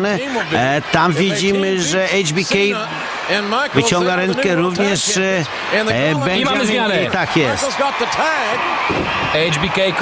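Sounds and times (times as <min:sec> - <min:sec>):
man commentating: 0:00.0 - 0:10.0.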